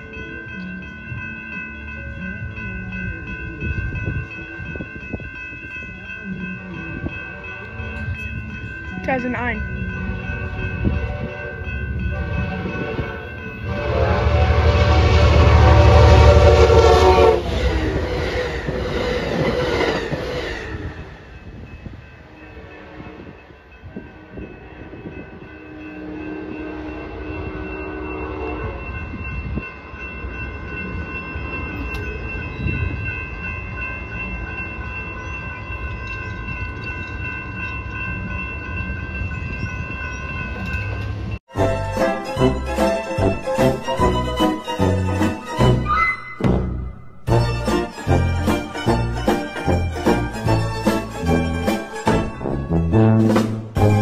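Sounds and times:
crossing bells ringing: 0:00.0 - 0:54.0
locomotive rumble: 0:00.0 - 0:54.0
train horn blast: 0:12.1 - 0:19.0, 0:24.0 - 0:29.0.

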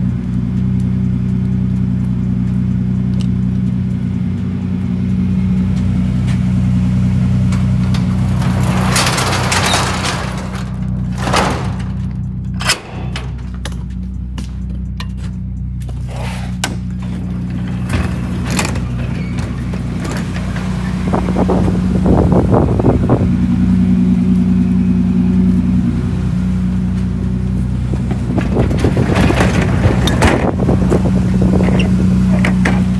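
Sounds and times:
car engine idling: 0:00.0 - 0:32.9.

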